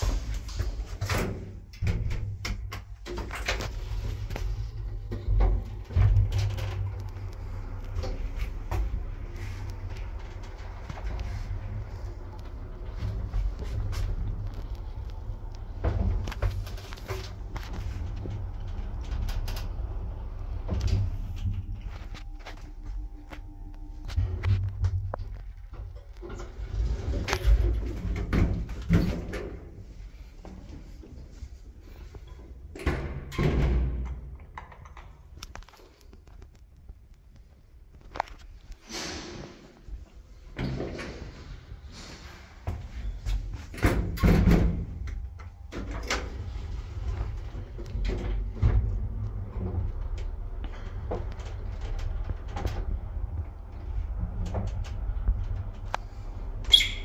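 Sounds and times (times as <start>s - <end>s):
elevator doors clunking: 0.0s - 23.3s
elevator rumble and hum: 0.0s - 57.0s.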